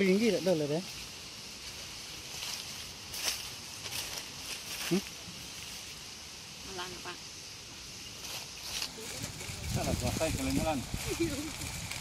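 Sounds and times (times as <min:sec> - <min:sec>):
steady high hiss: 0:00.0 - 0:12.0
hand tool scraping soil: 0:08.4 - 0:12.0.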